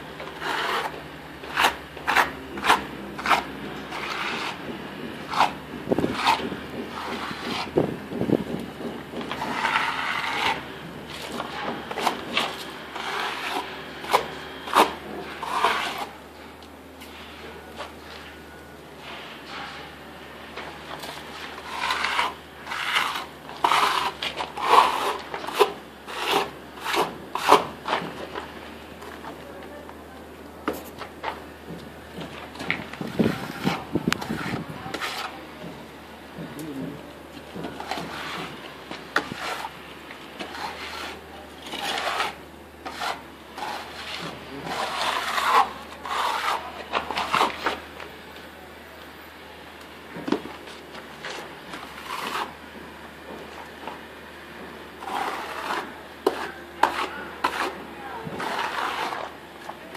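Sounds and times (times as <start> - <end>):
trowel scraping wet cement: 0.2 - 16.2, 20.8 - 28.5, 32.2 - 35.6, 36.5 - 48.0, 50.3 - 52.6, 54.9 - 59.9.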